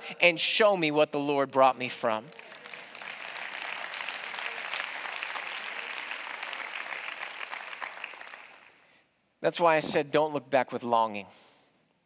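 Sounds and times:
audience applauding: 0:02.3 - 0:08.9.

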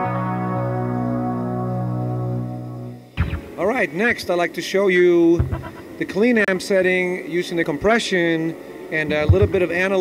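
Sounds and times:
electric guitar chord ringing: 0:00.0 - 0:04.2.

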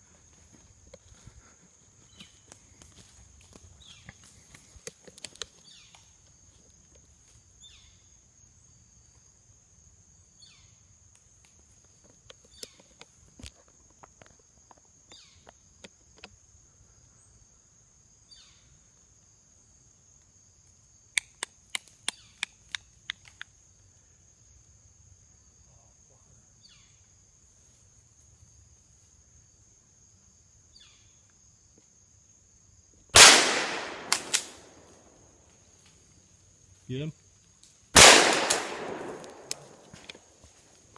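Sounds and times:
high insect drone: 0:00.0 - 0:40.9
loud shotgun blast: 0:33.2 - 0:34.6, 0:38.0 - 0:39.6
sharp clicks: 0:33.2 - 0:34.6, 0:38.0 - 0:40.2.

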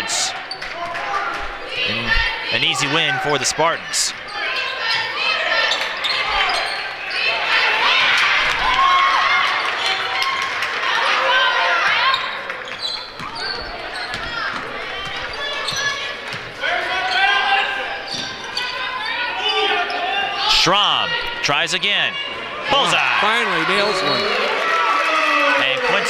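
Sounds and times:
sneakers squeaking: 0:00.0 - 0:08.6, 0:11.7 - 0:20.4.

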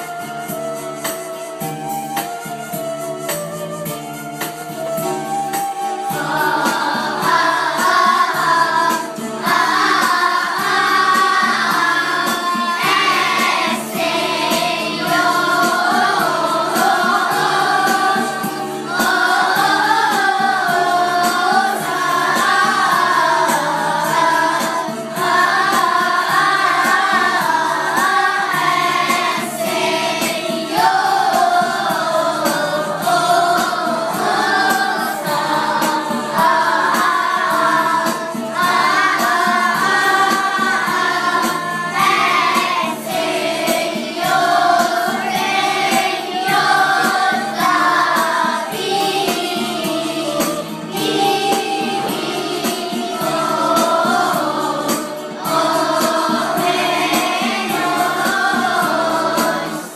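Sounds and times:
electronic keyboard: 0:00.0 - 0:59.9
children singing: 0:04.4 - 0:59.9.

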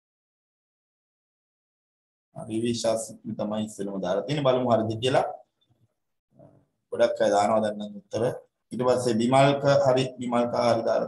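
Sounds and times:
man speaking: 0:02.4 - 0:05.5, 0:06.9 - 0:11.0.

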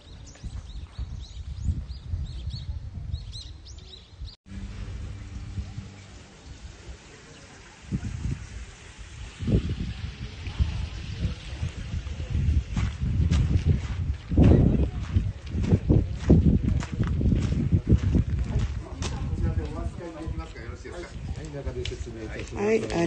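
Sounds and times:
low uneven rumble: 0:04.5 - 0:22.1.

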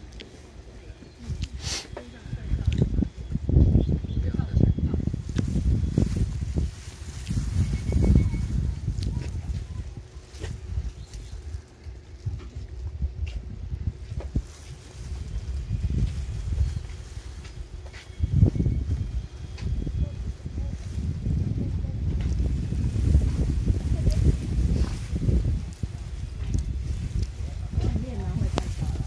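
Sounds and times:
wind buffeting microphone: 0:01.1 - 0:29.0.

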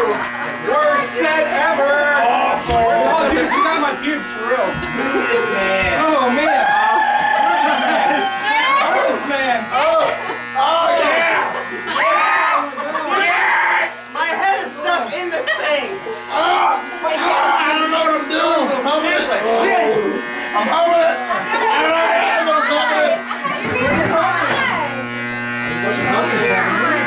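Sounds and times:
party voices shouting and wailing: 0:00.0 - 0:25.2
electronic buzz and hum: 0:00.0 - 0:27.0.

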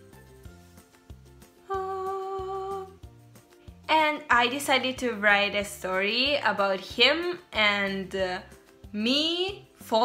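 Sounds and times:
quiet music with bass line: 0:00.0 - 0:10.0
person humming a note: 0:01.7 - 0:02.9.

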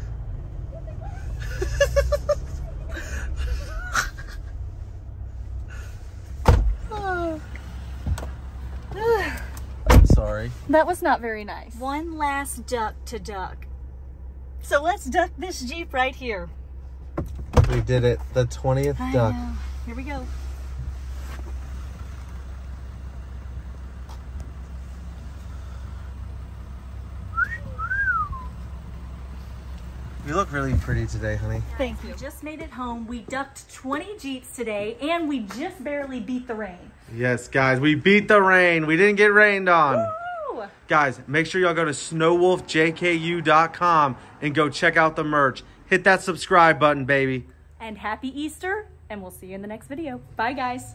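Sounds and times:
diesel engine idling: 0:00.0 - 0:35.4
car door slamming: 0:06.4 - 0:06.9, 0:09.8 - 0:10.4, 0:17.1 - 0:18.0
wolf whistle: 0:27.3 - 0:28.6.

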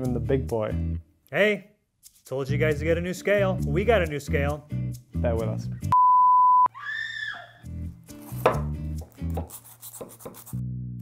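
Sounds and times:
background music with steady beat: 0:00.0 - 0:01.1, 0:01.9 - 0:06.0.

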